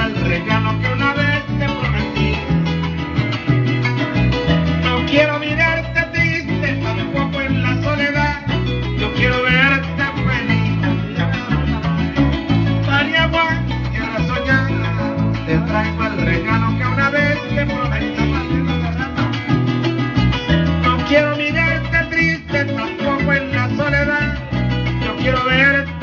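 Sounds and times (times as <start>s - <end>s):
plucked bass line: 0.0s - 26.0s.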